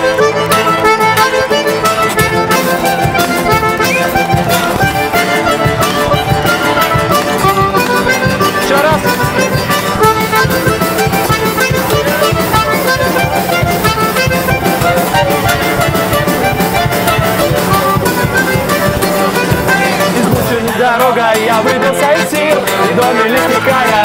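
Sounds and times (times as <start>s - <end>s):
button accordion playing tune: 0.0s - 24.0s
strummed acoustic guitar: 0.0s - 24.0s.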